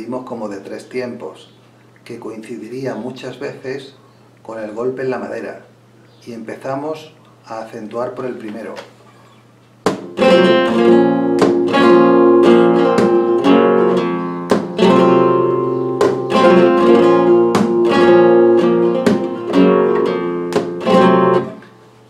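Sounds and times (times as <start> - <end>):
guitar strumming chords: 9.8 - 22.0.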